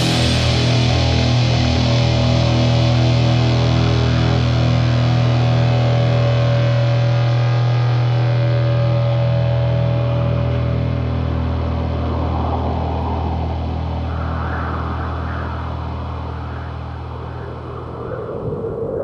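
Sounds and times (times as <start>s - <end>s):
low droning note: 0.0s - 19.0s
wavering higher sound: 11.8s - 19.0s.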